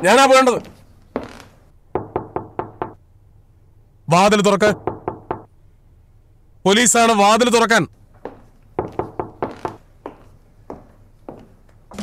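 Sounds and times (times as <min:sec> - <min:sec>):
knuckles knocking on door: 0:02.0 - 0:03.0, 0:04.8 - 0:05.5, 0:08.8 - 0:09.8.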